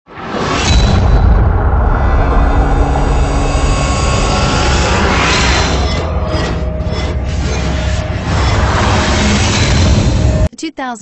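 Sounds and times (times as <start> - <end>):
loud low rumble with hiss: 1.1 - 5.8.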